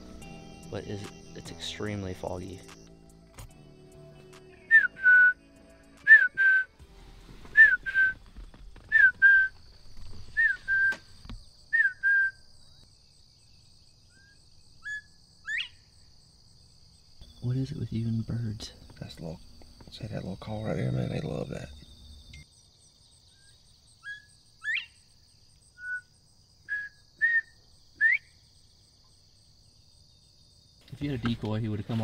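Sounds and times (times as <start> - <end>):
two-note whistled call: 4.6 - 5.4, 6.0 - 6.8, 7.5 - 8.2, 10.4 - 11.0, 26.7 - 28.3
rising whistle: 4.7 - 5.4, 6.0 - 6.8, 7.5 - 8.2, 8.9 - 9.6, 10.3 - 11.0, 11.7 - 12.4, 26.7 - 28.3
person's voice: 30.9 - 32.0.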